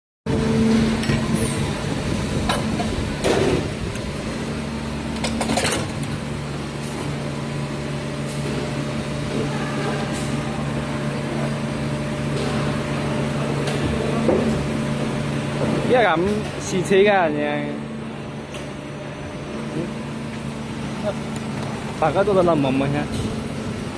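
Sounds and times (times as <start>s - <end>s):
machine running with low hum: 0.3s - 23.9s.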